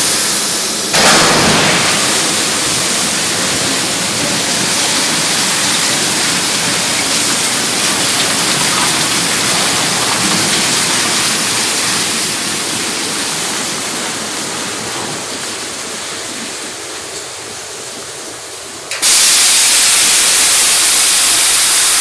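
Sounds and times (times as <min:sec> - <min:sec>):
coal pouring from hopper: 0:00.9 - 0:14.8.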